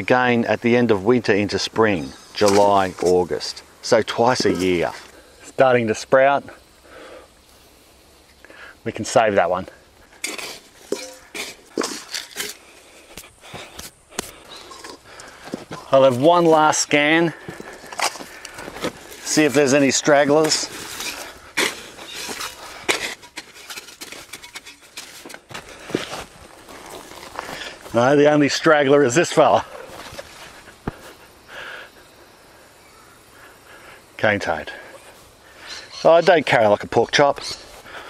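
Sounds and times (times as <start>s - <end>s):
shuffling steps: 9.9s - 28.4s, 29.5s - 31.4s
hands rummaging through soil: 10.0s - 28.2s
metal bowl clanks: 10.2s - 12.6s, 20.4s - 25.5s
potatoes knocking in steel bowl: 10.2s - 12.6s.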